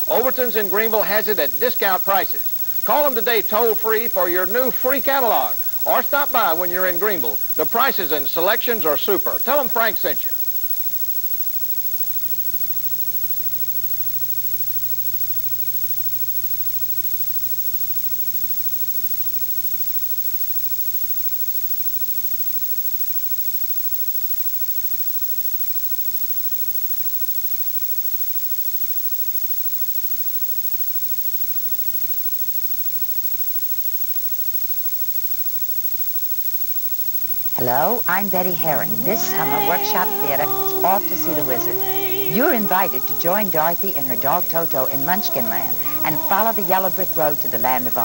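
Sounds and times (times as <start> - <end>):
tape hiss: 0.0 - 21.6, 37.2 - 48.0.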